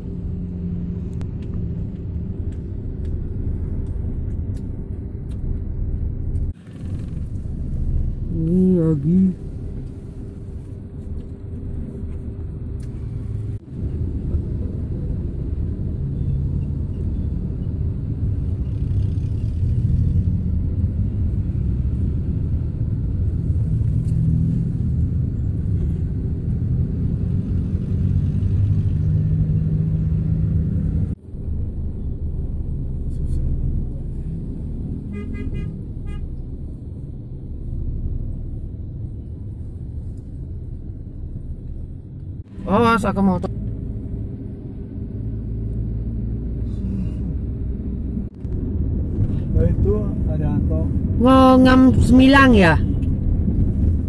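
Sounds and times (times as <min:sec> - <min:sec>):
vehicle engine and road rumble: 0:00.0 - 0:54.0
vehicle horn: 0:35.0 - 0:36.4.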